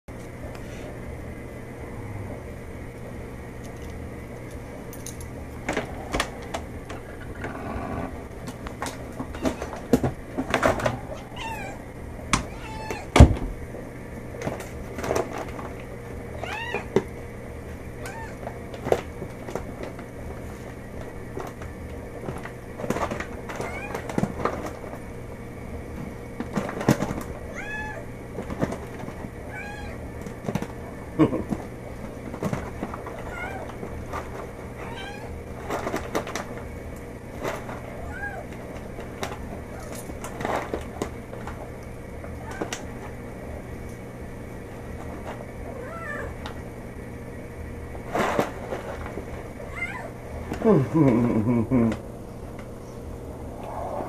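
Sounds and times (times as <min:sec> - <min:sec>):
cat meowing: 0:11.0 - 0:11.9, 0:12.5 - 0:13.1, 0:16.4 - 0:16.9, 0:18.0 - 0:18.4, 0:27.5 - 0:28.1, 0:29.5 - 0:30.0, 0:33.3 - 0:33.7, 0:34.8 - 0:35.4, 0:38.0 - 0:38.5, 0:45.7 - 0:46.4, 0:49.7 - 0:50.1.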